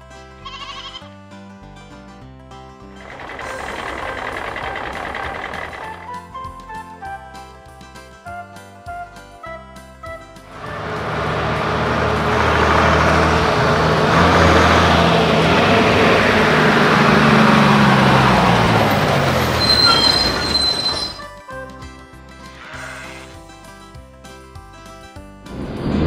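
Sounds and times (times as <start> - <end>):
quiet children's music: 0.0 - 19.6, 21.1 - 26.0
heavy truck engine rumble: 2.8 - 7.8, 10.2 - 21.4.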